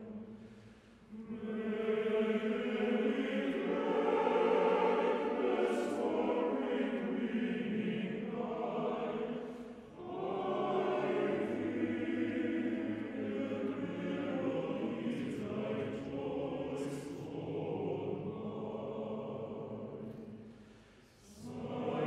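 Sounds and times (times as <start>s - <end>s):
male choir singing held chords: 0.0s - 22.0s.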